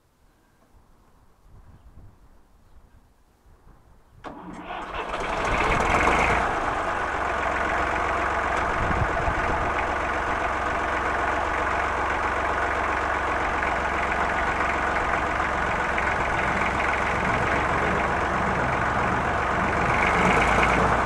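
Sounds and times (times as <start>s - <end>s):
tractor engine starting and idling: 4.2s - 21.0s.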